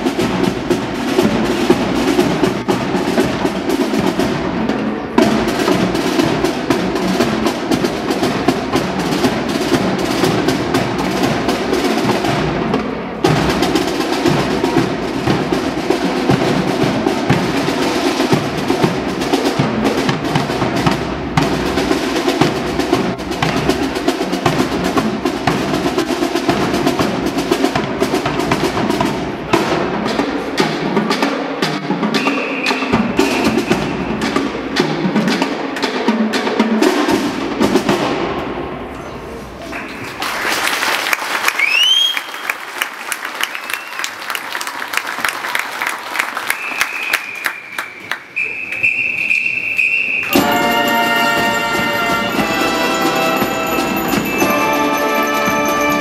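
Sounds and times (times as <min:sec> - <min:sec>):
snare drum rolls: 0:00.0 - 0:38.8, 0:45.2 - 0:56.0
lower drums and band: 0:00.0 - 0:39.6, 0:50.2 - 0:56.0.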